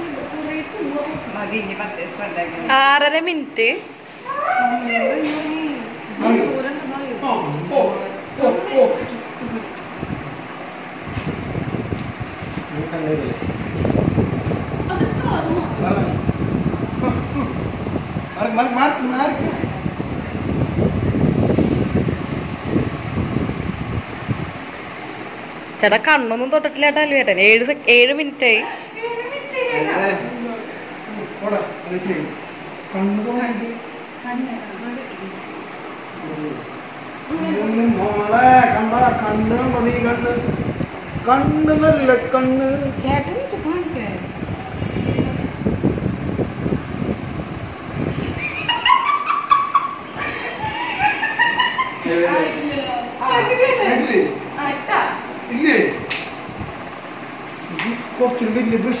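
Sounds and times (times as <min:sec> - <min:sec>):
wind buffeting microphone: 0:11.0 - 0:24.7, 0:37.9 - 0:48.6, 0:55.9 - 0:57.0
high-pitched squealing laughter: 0:48.0 - 0:52.1.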